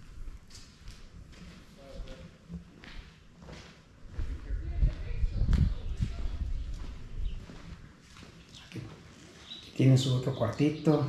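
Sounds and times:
footsteps on concrete floor: 0.0s - 10.7s.

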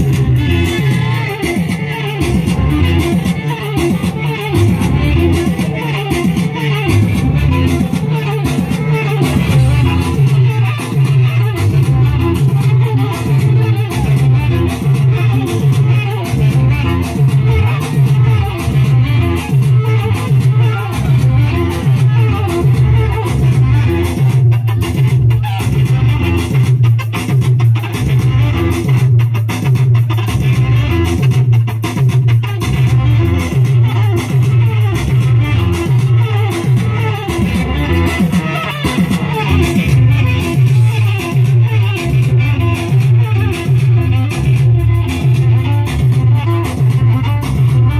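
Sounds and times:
electric guitar: 0.0s - 47.9s
live band music over pa: 0.0s - 47.9s
pulsing bass beat: 0.0s - 47.9s.

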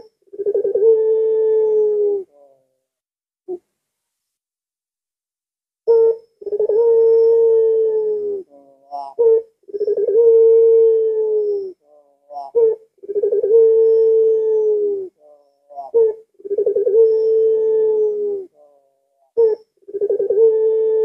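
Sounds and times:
dove cooing: 0.0s - 2.8s, 5.9s - 21.0s.

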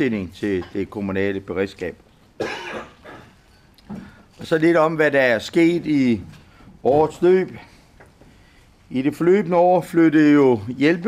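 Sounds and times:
man coughing: 2.4s - 3.4s.

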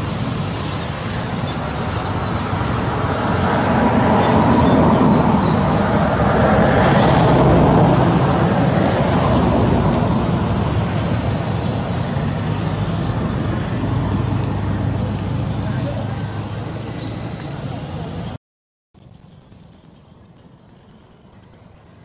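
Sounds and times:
road traffic rumble: 0.0s - 18.4s, 19.0s - 22.0s.

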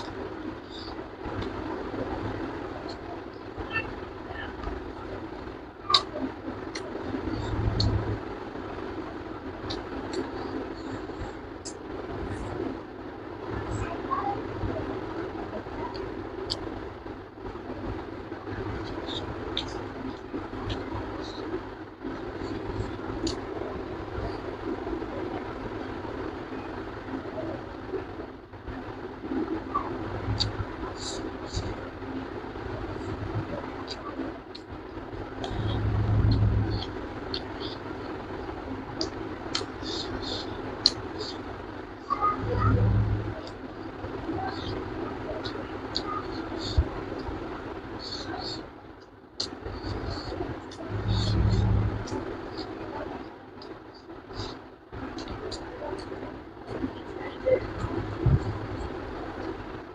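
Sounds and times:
low rumbling background noise: 0.0s - 59.9s
low rumble: 29.3s - 40.2s, 40.8s - 45.2s, 49.5s - 52.6s, 56.1s - 59.3s.

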